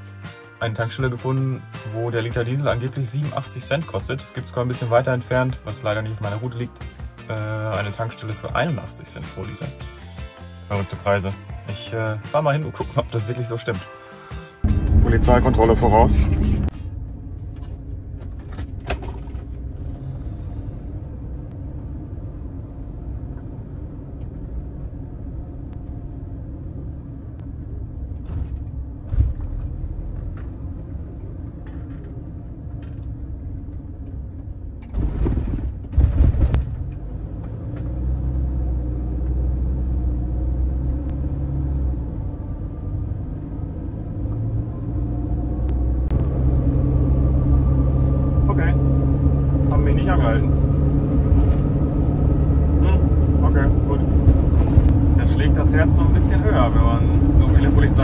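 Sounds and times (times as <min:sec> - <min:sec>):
diesel van engine rumble: 0:00.0 - 0:58.0
road noise: 0:00.0 - 0:58.0.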